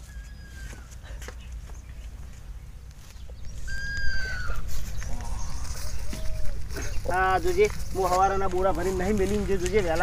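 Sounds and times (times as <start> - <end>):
lower arching animal calls: 0.0 - 1.0, 3.5 - 7.0
high whistle-like animal call: 3.6 - 4.7.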